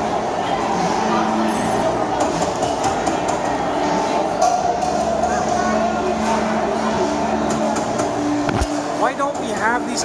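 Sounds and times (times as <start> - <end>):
busy restaurant din: 0.0 - 10.0.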